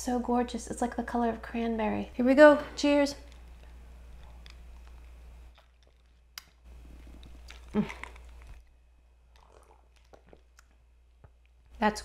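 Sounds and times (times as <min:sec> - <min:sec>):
lip smacks: 0:03.2 - 0:11.6
person sipping and swallowing: 0:03.2 - 0:11.6.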